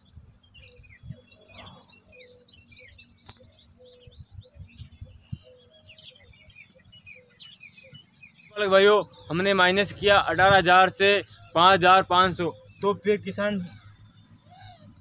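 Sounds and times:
small birds chirping: 0.0s - 15.0s.

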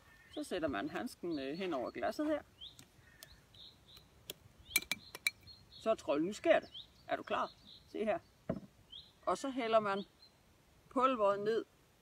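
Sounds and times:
birds chirping faintly: 0.0s - 12.0s.

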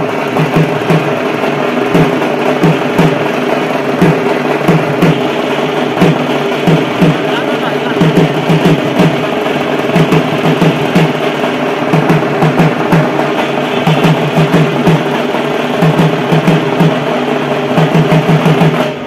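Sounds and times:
barrel drums in fast rolls: 0.0s - 19.0s.

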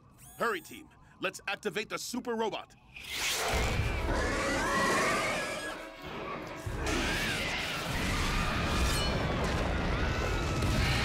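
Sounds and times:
dramatic background music: 3.7s - 11.0s.

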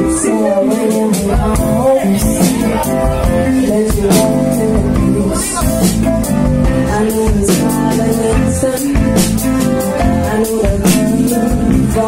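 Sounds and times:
bass guitar: 0.0s - 12.0s
electric guitar: 0.0s - 12.0s.

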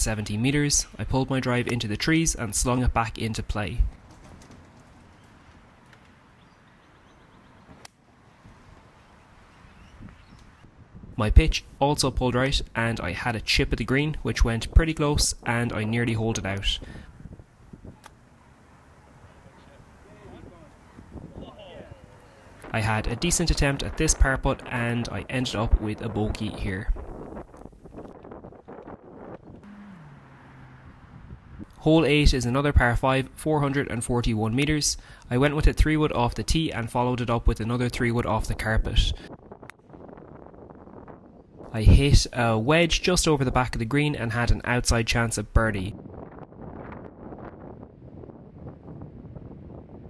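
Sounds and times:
wind buffeting microphone: 0.0s - 50.0s
faint bird chirps: 6.4s - 7.8s, 9.0s - 10.6s.

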